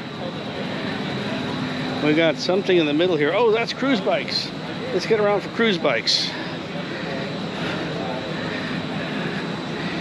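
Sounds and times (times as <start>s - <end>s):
faint indistinct voices: 0.0s - 10.0s
hall ambient rush: 0.0s - 10.0s.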